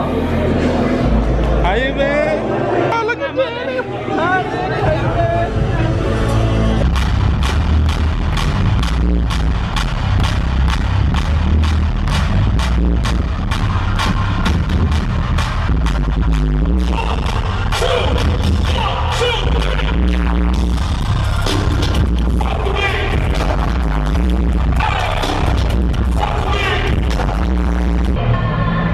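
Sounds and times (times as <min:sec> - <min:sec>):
hip-hop music with heavy beat: 0:02.5 - 0:28.9.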